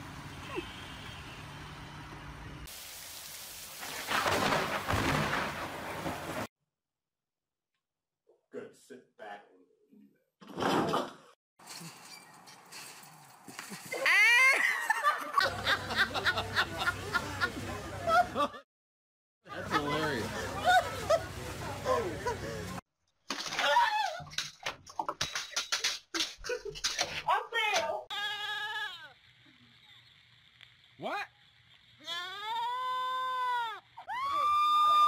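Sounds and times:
man laughing: 13.8 - 18.6.

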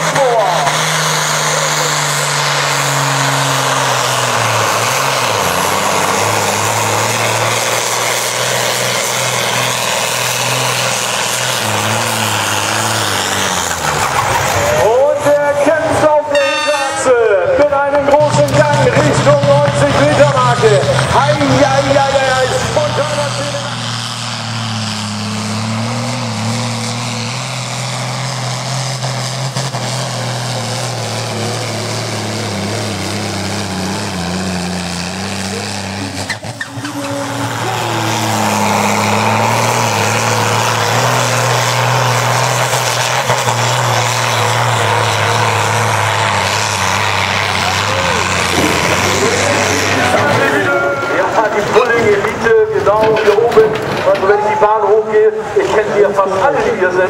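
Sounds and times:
tractor diesel engine under load: 0.0 - 57.0.

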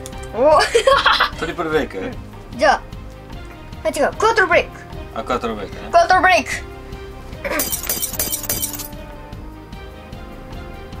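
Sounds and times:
background music: 0.0 - 11.0
glass shattering: 7.5 - 9.0.

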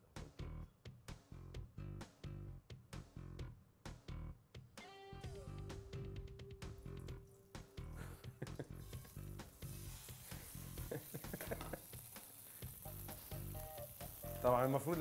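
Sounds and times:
background music with steady beat: 0.0 - 15.0
fish sizzling in frying pan: 8.6 - 15.0.

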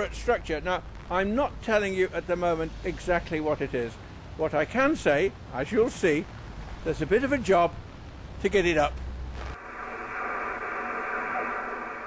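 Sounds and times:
radio static hiss: 0.0 - 4.0, 4.8 - 12.0
low outdoor rumble: 0.0 - 12.0.

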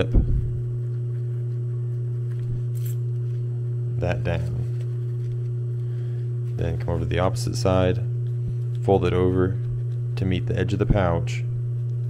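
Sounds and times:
low electric hum: 0.0 - 12.0
nylon webbing handled: 4.3 - 5.7.

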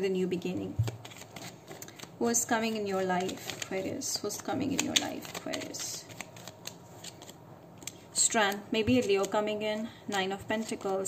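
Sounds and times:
cards sliding and rustling: 0.8 - 8.1, 8.9 - 11.0
cards clicking while shuffled: 0.8 - 11.0.

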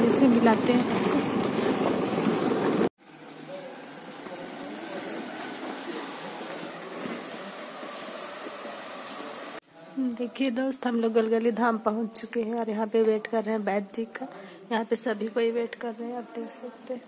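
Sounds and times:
murmur of distant people talking: 3.0 - 17.0.

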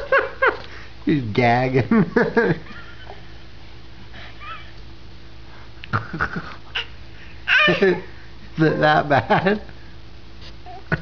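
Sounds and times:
adult laughing: 0.0 - 0.8, 1.8 - 3.3, 5.9 - 6.9, 8.8 - 9.7
baby whimpering and gagging: 6.7 - 8.0
baby crying: 6.8 - 8.1.

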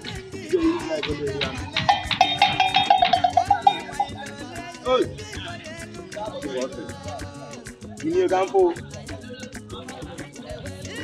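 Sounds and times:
background music with steady beat: 0.0 - 11.0.

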